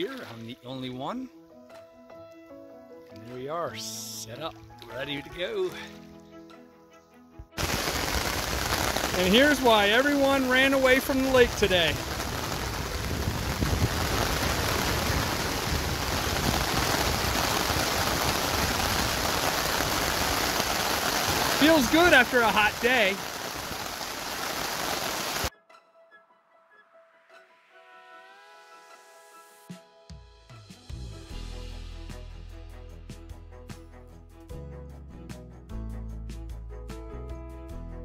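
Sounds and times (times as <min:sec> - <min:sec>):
quiet background music: 0:00.0 - 0:07.6
heavy rain on a tarp: 0:07.6 - 0:25.5.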